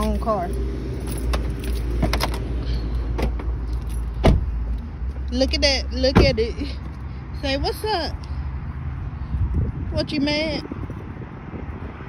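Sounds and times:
car keys jingling: 0.0s - 7.0s.

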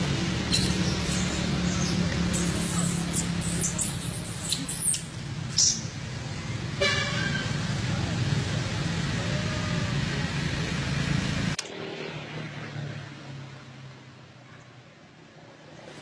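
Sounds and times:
road traffic hum: 0.0s - 16.0s
car horn toot: 6.8s - 7.5s.

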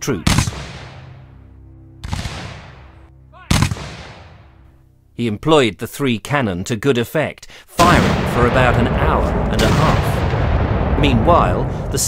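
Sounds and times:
musket shots echoing: 0.2s - 1.2s, 2.0s - 4.5s, 7.8s - 12.0s.

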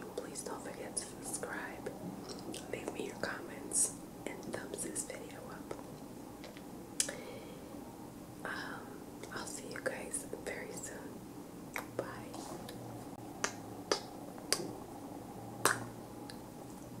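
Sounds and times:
whispered breaths: 7.0s - 7.8s, 8.5s - 11.2s
lip smacking kisses: 11.7s - 12.0s, 13.4s - 14.8s, 15.6s - 16.4s.

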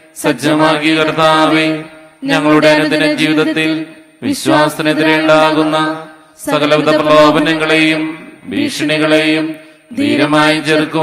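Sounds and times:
man reciting prayers: 0.1s - 11.0s.

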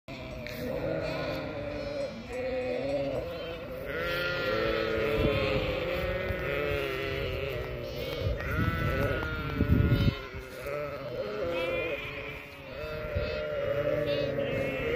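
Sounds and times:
sheep and goats bleating: 0.1s - 14.9s.

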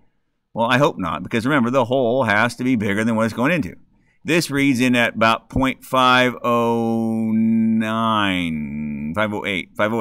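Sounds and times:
man's drawn-out hesitation sound: 0.5s - 10.0s.

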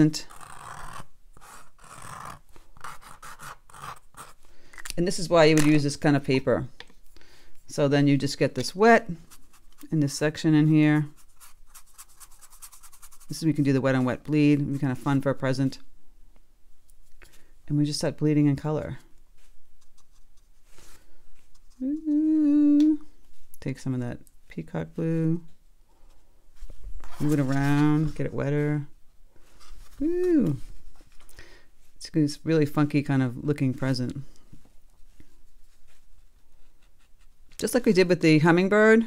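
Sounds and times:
felt-tip pen scratching on paper: 0.2s - 4.4s, 11.1s - 13.4s
brush stroking on paper: 11.0s - 14.1s
soft rustle: 18.8s - 22.4s, 25.4s - 32.0s, 33.8s - 37.6s
woman saying ooh: 21.8s - 23.1s, 30.0s - 30.6s.

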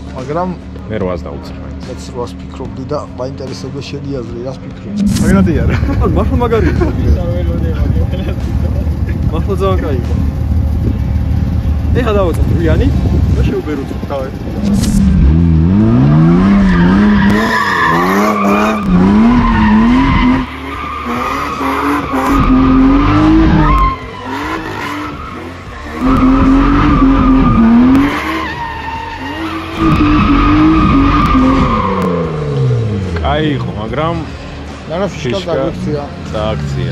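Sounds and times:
car engine revving: 0.0s - 36.9s
tyres skidding on asphalt: 13.0s - 36.9s.

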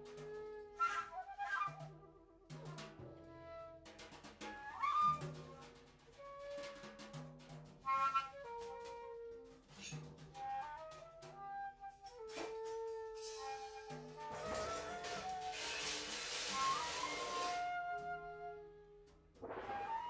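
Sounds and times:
flutes playing sliding notes: 10.6s - 20.0s
drum and cymbal hits: 13.2s - 17.6s.

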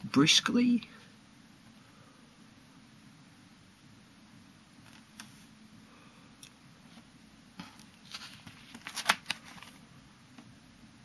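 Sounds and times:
plastic sleeve pages rustling: 7.6s - 9.8s.

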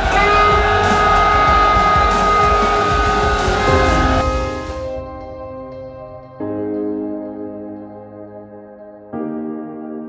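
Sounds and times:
crowd of men shouting: 0.0s - 4.8s
long held note: 0.0s - 6.3s
soft ambient keyboard music: 0.0s - 10.0s.

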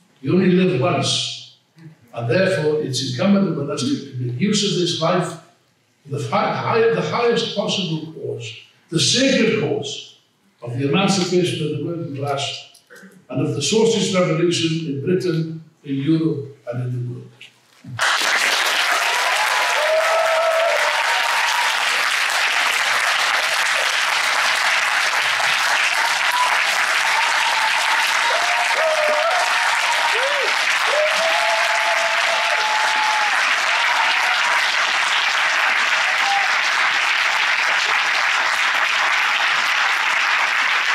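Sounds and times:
audience clapping: 17.9s - 40.9s.

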